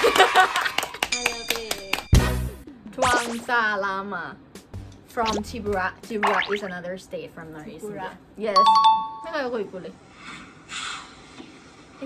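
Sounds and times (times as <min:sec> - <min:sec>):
laughter: 0:00.0 - 0:00.9
people clapping: 0:00.0 - 0:02.2.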